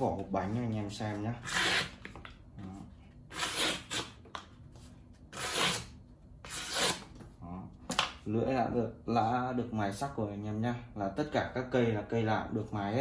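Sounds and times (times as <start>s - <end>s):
blade slicing cardboard: 3.3s - 4.2s, 5.3s - 7.1s.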